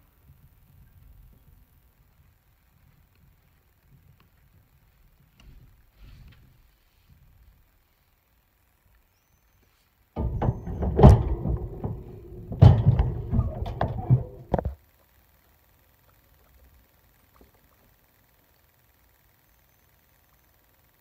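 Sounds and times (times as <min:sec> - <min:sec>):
sharp knocks: 0:10.2 - 0:14.8.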